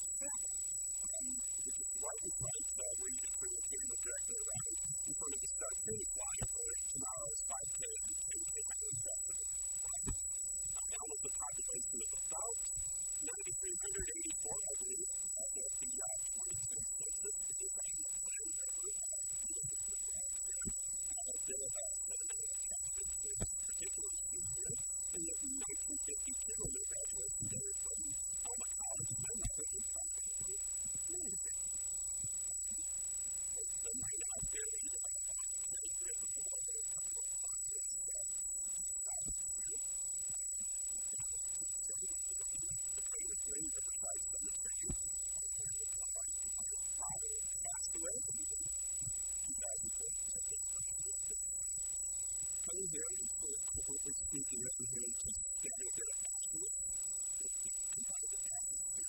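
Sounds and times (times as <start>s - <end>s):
muffled speech: 0.0s - 31.6s, 33.5s - 51.5s, 52.6s - 59.0s
electrical hum: 0.0s - 59.0s
high-pitched electronic whine: 0.0s - 59.0s.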